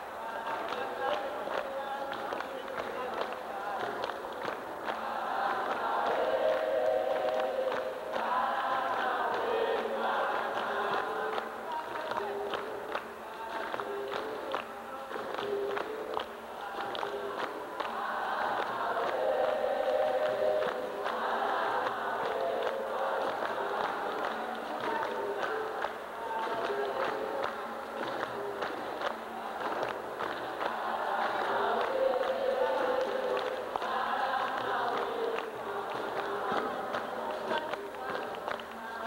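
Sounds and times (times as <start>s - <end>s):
group singing together: 0.0s - 39.0s
hand clapping: 0.3s - 39.0s.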